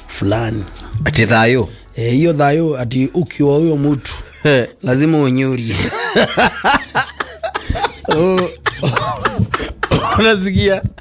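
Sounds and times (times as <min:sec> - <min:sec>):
men laughing hard: 0:05.7 - 0:10.4.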